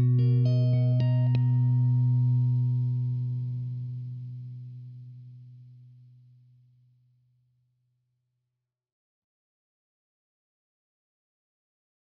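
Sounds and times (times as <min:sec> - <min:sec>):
electric guitar chord ringing: 0:00.0 - 0:05.4.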